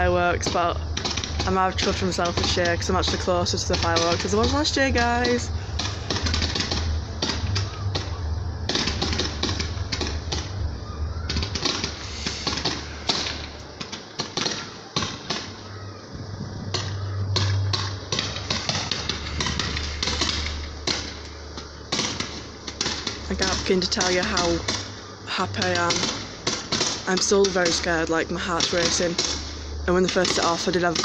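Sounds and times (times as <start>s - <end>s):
fireworks cracking and popping: 0.0s - 31.0s
low rumble: 0.8s - 12.2s, 16.1s - 23.9s.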